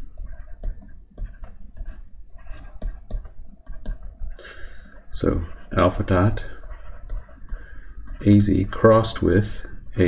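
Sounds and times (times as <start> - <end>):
stylus tapping on pen tablet: 0.0 - 5.1, 6.6 - 9.1.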